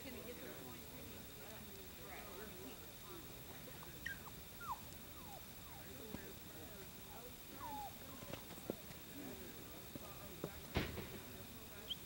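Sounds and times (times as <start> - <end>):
distant talking: 0.0 - 12.0.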